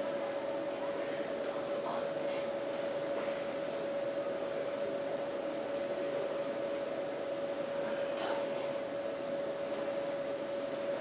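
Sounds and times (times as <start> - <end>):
mid-pitched hum: 0.0 - 11.0.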